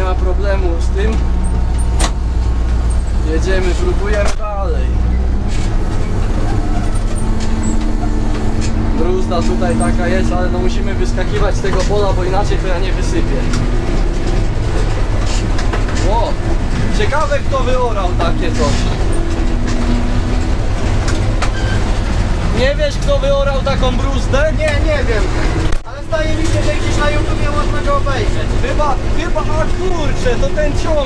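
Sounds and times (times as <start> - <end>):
combine harvester mechanical drone: 0.0 - 31.0
constant hum: 0.0 - 31.0.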